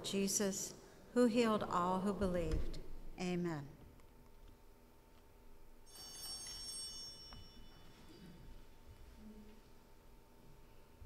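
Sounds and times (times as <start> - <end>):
small bell ringing: 5.8 - 8.7.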